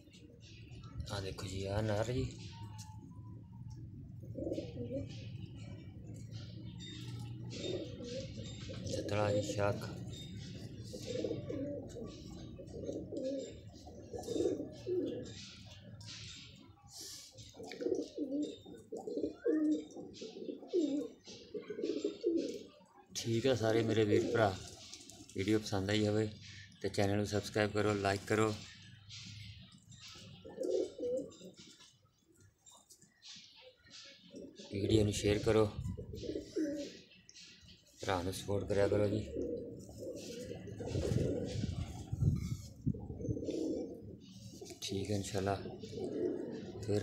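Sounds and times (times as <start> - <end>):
pigeons cooing: 0.0 - 47.0.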